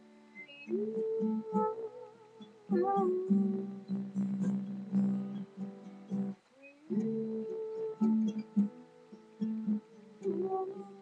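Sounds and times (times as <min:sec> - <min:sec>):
guitar strumming chords: 0:00.0 - 0:11.0.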